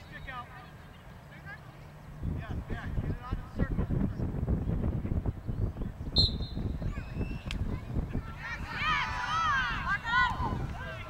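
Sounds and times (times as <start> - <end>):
wind rumble on microphone: 2.1 - 11.0
referee's whistle blast: 6.2 - 6.6.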